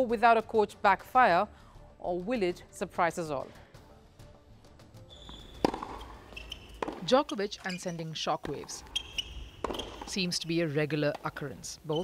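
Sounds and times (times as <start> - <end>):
high-pitched squeak: 5.1 - 10.2
racket hitting tennis ball: 5.3 - 11.6.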